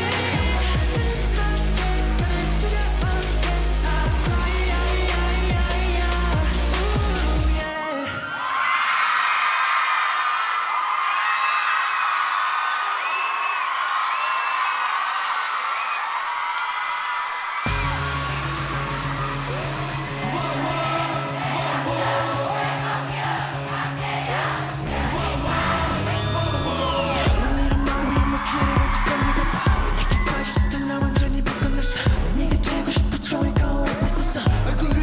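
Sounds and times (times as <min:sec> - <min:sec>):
pop music with heavy bass beat: 0:00.0 - 0:08.2, 0:17.7 - 0:23.1, 0:24.6 - 0:35.0
audience screaming and cheering: 0:00.0 - 0:35.0.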